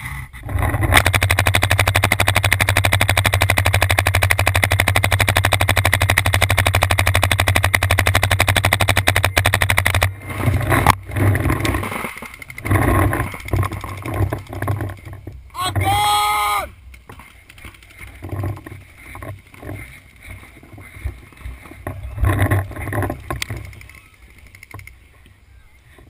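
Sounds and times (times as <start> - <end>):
rustling: 0.0 - 15.9, 16.8 - 26.0
paintball marker rapid firing: 0.8 - 15.0.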